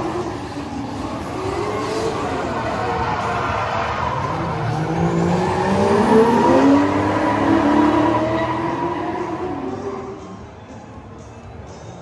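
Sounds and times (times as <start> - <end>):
car engines at high revs: 0.0 - 10.3
tyres skidding: 0.0 - 10.4.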